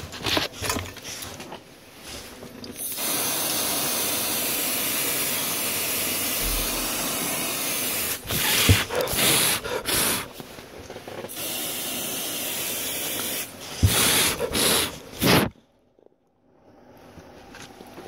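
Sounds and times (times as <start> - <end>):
aerosol spray can hissing: 2.8 - 10.4, 11.3 - 15.5.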